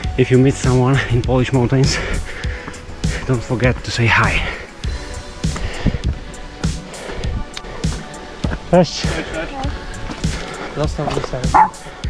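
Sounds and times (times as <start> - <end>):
background music: 0.0 - 12.0
dog barking: 11.5 - 11.8.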